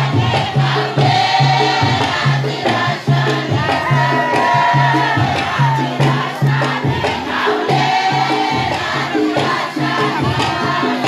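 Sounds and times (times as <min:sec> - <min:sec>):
group of voices singing in chorus: 0:00.0 - 0:11.0.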